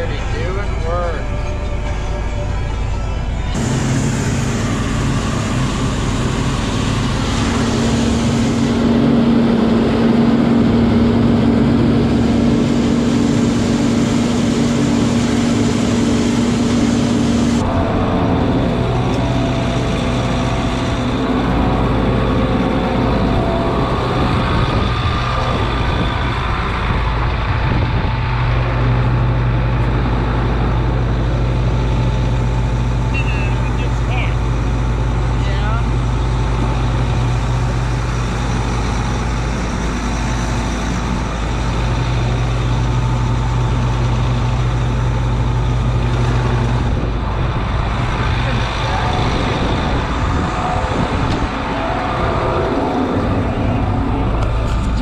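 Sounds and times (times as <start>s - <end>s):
engine idling: 0.0s - 55.0s
heavy diesel machinery running: 0.0s - 55.0s.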